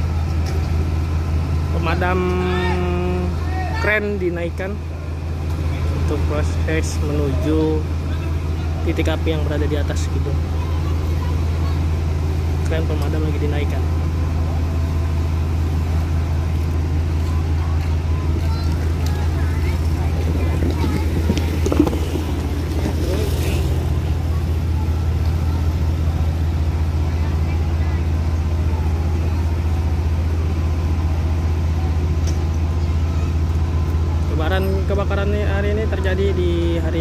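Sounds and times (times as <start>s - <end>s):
fire truck engine drone: 0.0s - 37.0s.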